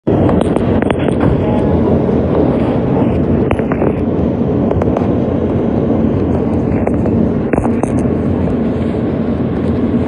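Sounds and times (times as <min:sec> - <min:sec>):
train wheels rumbling on rail: 0:00.1 - 0:10.0.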